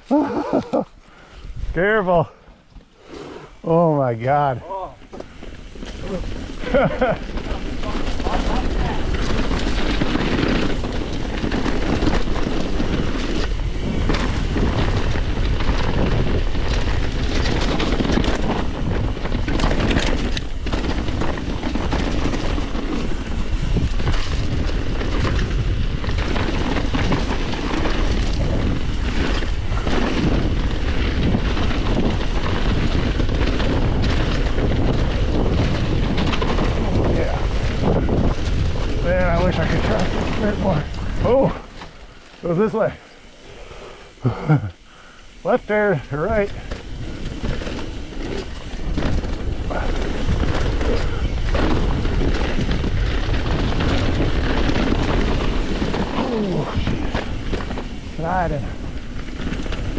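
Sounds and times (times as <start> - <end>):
bike rattling over bumps: 0.0 - 59.9
bike tyres on dirt: 0.0 - 59.9
wind noise on microphone: 1.1 - 3.7, 4.6 - 59.9.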